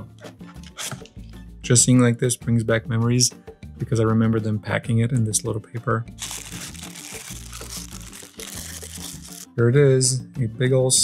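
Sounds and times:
background music: 0.0s - 11.0s
paper wrapper crinkling: 6.2s - 9.5s.

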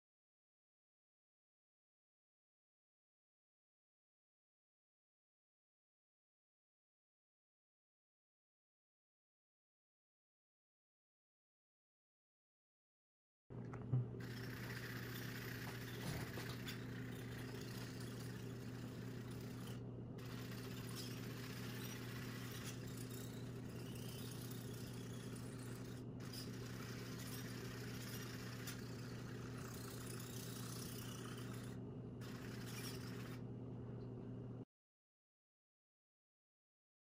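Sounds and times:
small motors humming with hiss: 14.2s - 33.5s.

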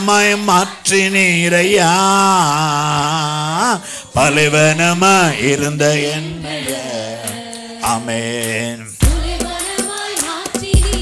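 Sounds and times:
man singing into microphone: 0.0s - 9.0s.

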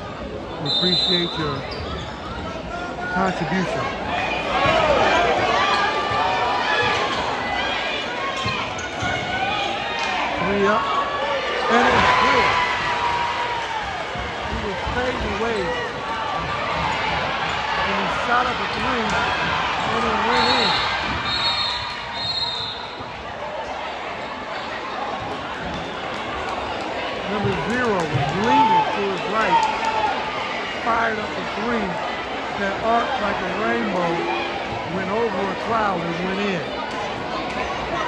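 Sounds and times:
crowd chatter and calls: 0.0s - 38.0s.

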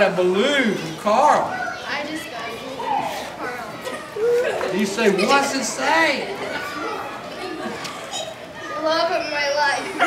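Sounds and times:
children's voices chattering: 0.0s - 10.0s
girl speaking: 1.6s - 4.1s, 8.6s - 10.0s.

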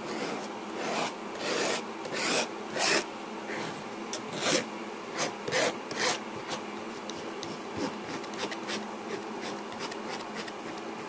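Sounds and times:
palette knife scraping oil paint: 0.1s - 4.6s.

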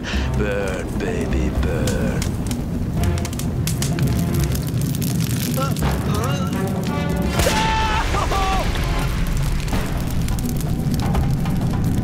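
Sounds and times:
background music: 0.0s - 12.0s
flames rumbling and crackling: 0.0s - 12.0s.

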